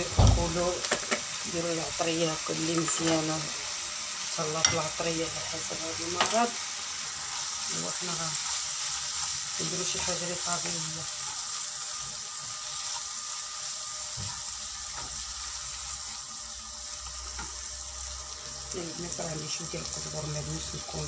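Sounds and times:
meat sizzling in frying pan: 0:00.0 - 0:21.0.

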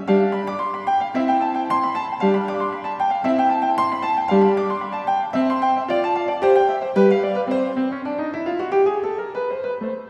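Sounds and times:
piano melody: 0:00.0 - 0:10.0.

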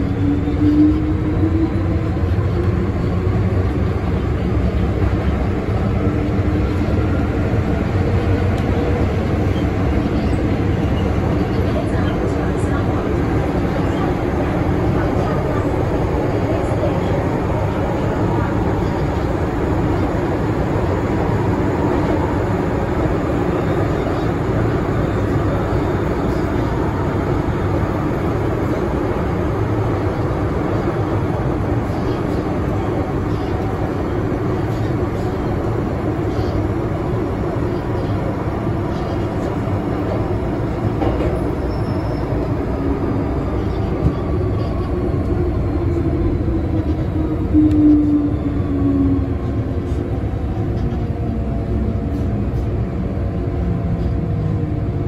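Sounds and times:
train rumbling from inside: 0:00.0 - 0:55.0.

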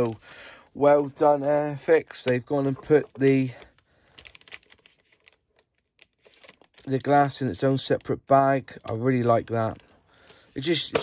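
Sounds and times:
plastic bag crinkling: 0:00.0 - 0:11.0
man speaking: 0:00.8 - 0:03.6, 0:06.8 - 0:09.8, 0:10.6 - 0:11.0.

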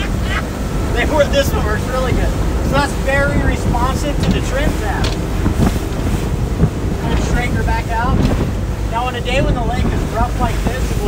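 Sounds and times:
boat engine running steadily: 0:00.0 - 0:11.0
water rushing along hull: 0:00.0 - 0:11.0
wind buffeting microphone: 0:00.0 - 0:11.0.

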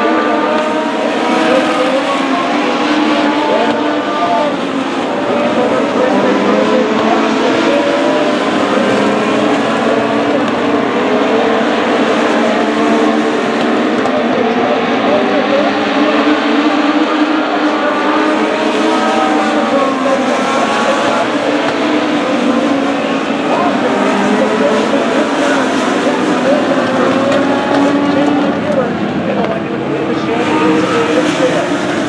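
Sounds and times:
race car engines: 0:00.0 - 0:32.0.

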